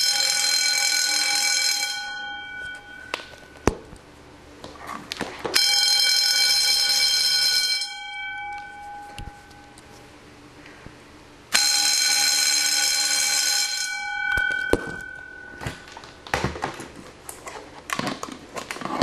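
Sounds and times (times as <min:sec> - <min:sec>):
electric alarm bells ringing: 0:00.0 - 0:03.7, 0:05.6 - 0:10.0, 0:11.5 - 0:16.5.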